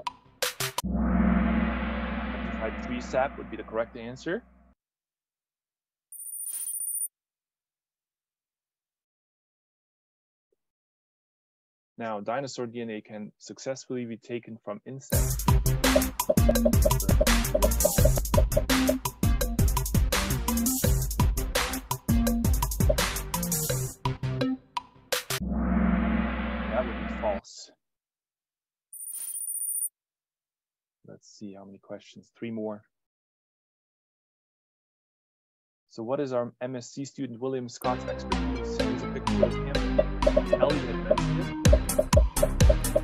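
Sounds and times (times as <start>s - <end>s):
bright high ringing tone: 0.8s - 4.0s
high-pitched electronic sound effect: 0.8s - 4.1s, 15.9s - 19.0s, 25.4s - 27.4s.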